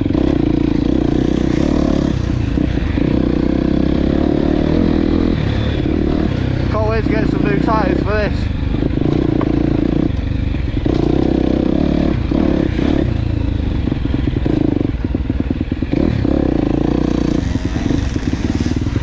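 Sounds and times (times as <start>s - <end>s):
dirt bike engine revving: 0.0s - 19.0s.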